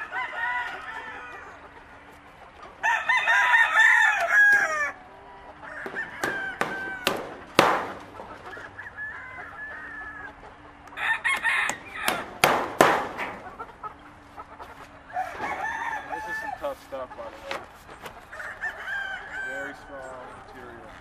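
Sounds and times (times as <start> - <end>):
rooster crowing: 0.0 - 1.6, 2.8 - 7.3, 8.6 - 10.4, 11.0 - 12.5, 15.1 - 16.7, 18.3 - 20.1
sharp knocks: 5.8 - 8.3, 11.7 - 13.5.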